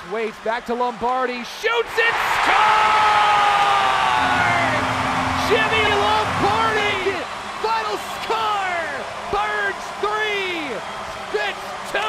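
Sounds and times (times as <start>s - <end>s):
crowd noise: 3.9s - 9.3s.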